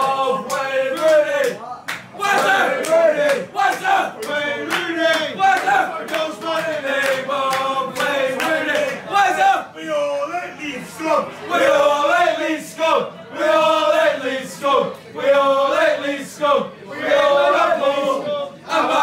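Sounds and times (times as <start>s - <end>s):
men singing a shouted chant: 0.0s - 1.6s.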